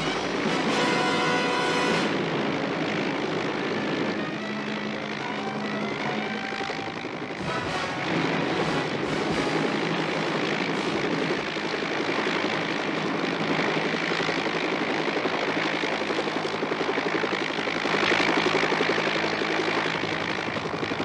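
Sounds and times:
small aircraft engine drone: 0.0s - 21.0s.

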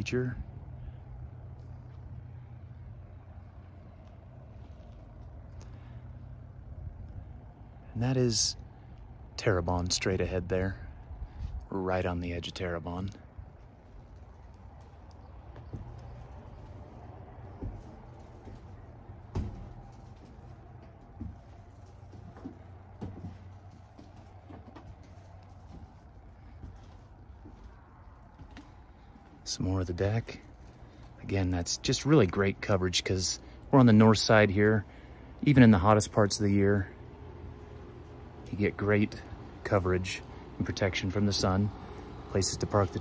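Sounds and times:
low outdoor rumble: 0.0s - 43.0s
low steady hum: 0.0s - 43.0s
faint clicks: 13.1s - 18.7s
footsteps on wooden boards: 14.8s - 29.6s.

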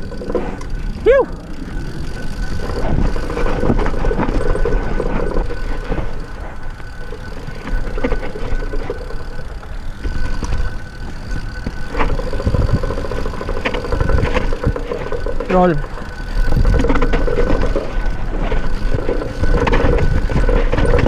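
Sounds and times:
bike knocking and rattling: 0.0s - 21.0s
tyres on dirt and rock: 0.0s - 21.0s
wind rumble on microphone: 0.0s - 21.0s.

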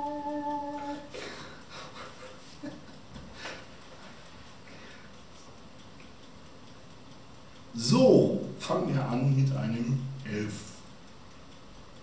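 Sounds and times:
breathy laughter: 1.2s - 3.5s.

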